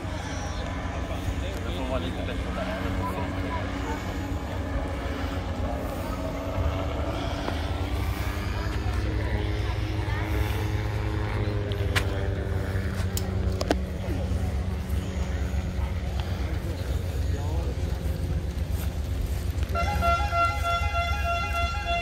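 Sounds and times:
faint voices: 0.0s - 22.0s
low engine drone: 0.0s - 22.0s.

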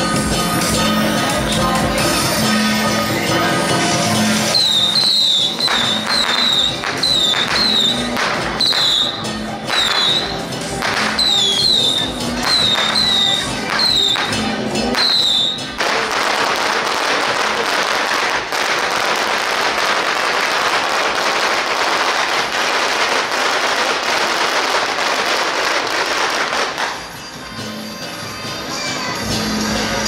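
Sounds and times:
firecrackers popping: 4.2s - 27.6s.

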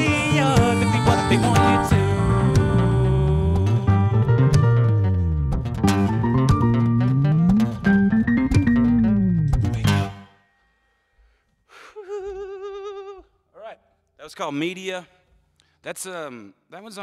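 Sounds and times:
percussive acoustic guitar: 0.0s - 10.3s.

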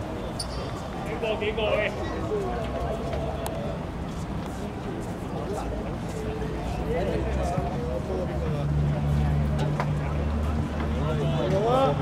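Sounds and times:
players' voices: 0.5s - 12.0s.

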